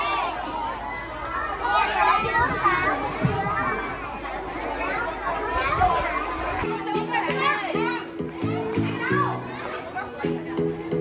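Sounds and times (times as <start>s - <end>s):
children chattering and calling out: 0.0s - 11.0s
music with repeating chords: 6.7s - 11.0s.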